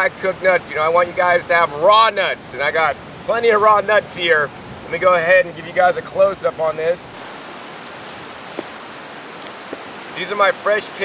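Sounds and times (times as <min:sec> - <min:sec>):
ocean surf rushing: 0:00.0 - 0:11.0.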